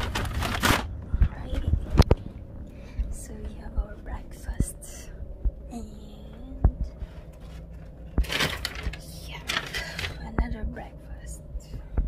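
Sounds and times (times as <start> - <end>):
woman whispering softly: 1.2 - 2.0, 3.1 - 7.0, 9.0 - 11.9
woman humming: 3.2 - 7.0.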